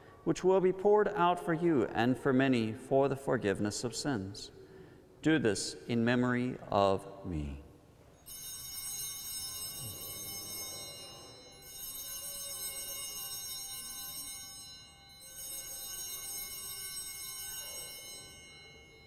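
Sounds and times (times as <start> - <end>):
altar bells ringing: 8.1 - 19.0.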